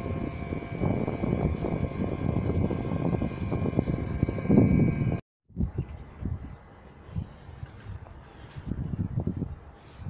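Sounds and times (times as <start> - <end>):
low rumbling: 0.0 - 6.6
mechanical hum with high whine: 0.0 - 6.6.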